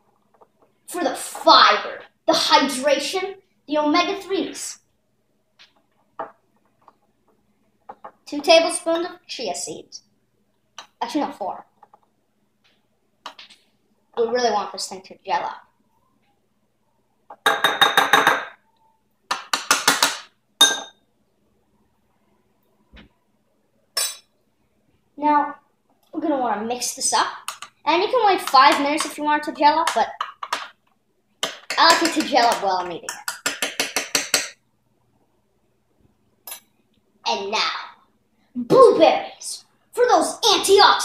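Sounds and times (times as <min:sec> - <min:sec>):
metal spoon clinking glass bowl: 0:20.6 - 0:21.0, 0:24.0 - 0:24.3.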